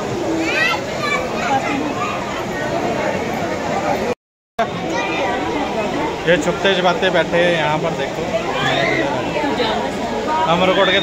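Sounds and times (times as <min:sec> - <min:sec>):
children's voices: 0:00.0 - 0:03.3, 0:04.7 - 0:06.2, 0:08.2 - 0:11.0
many people talking: 0:00.0 - 0:11.0.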